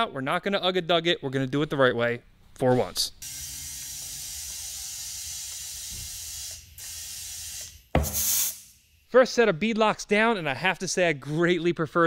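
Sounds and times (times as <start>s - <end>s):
ratchet turning bolts: 3.2s - 8.7s
sharp hissing burst: 3.2s - 8.9s.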